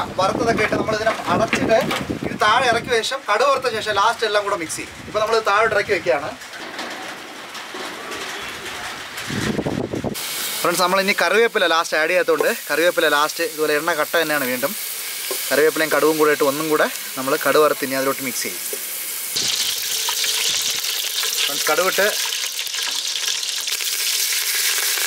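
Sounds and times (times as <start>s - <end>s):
outdoor background hiss: 0.0s - 25.0s
food sizzling in a pot: 10.1s - 25.0s.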